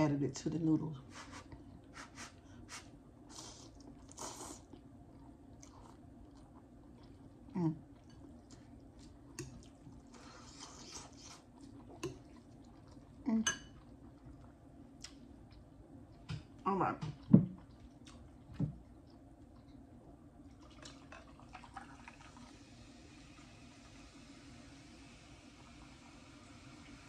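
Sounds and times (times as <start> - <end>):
chewing and slurping noodles: 3.3 - 16.2, 17.2 - 19.8.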